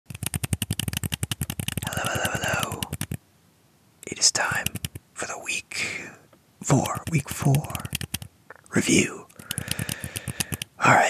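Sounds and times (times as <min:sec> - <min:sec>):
rapid tapping on plastic helmets: 0:00.1 - 0:03.2, 0:06.7 - 0:08.3, 0:09.3 - 0:10.7
scratchy rubbing on plastic: 0:00.1 - 0:03.2, 0:06.7 - 0:08.3, 0:09.3 - 0:10.7.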